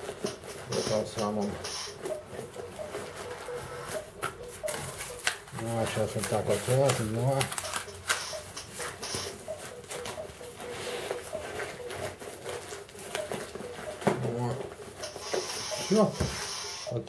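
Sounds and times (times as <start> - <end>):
plastic bag rustling: 2.4 - 9.0, 9.6 - 15.0.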